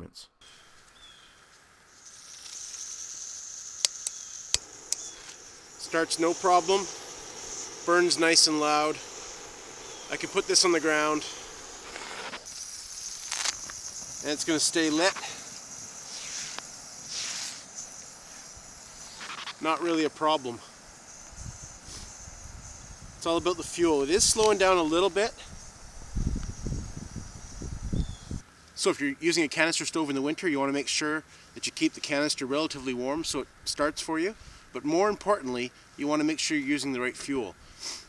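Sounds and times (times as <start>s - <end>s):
gas hissing through stove burner: 2.1s - 28.4s.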